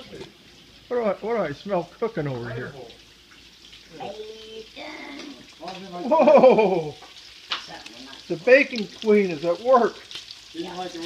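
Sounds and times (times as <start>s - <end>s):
bacon frying in a skillet: 0.0s - 11.0s.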